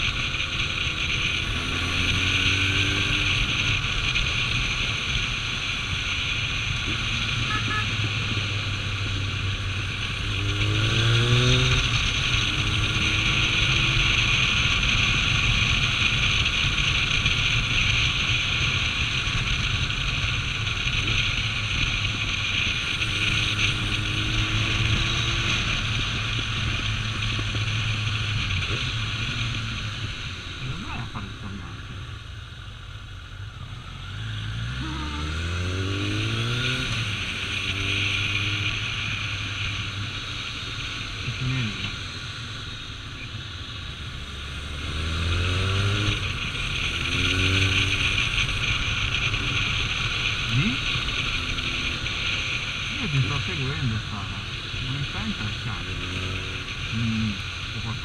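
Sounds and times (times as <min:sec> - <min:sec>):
motorcycle engine accelerating: 0:00.0 - 0:58.0.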